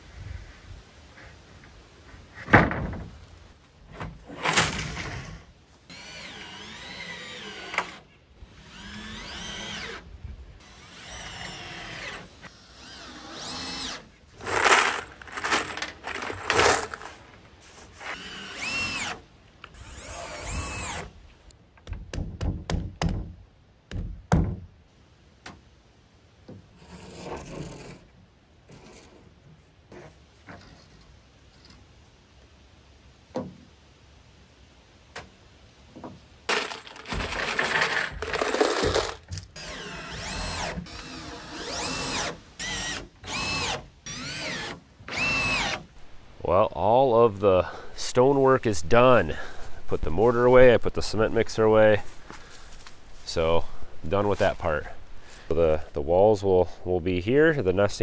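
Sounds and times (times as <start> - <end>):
cordless drill driving screws: 36.5 - 45.9.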